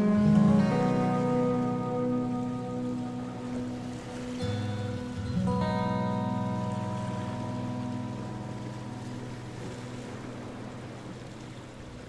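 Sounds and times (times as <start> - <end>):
soft guitar music: 0.0 - 12.0.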